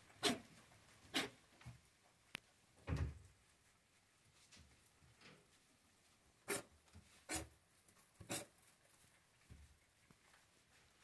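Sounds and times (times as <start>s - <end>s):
rabbits chewing grass: 0.0s - 11.0s.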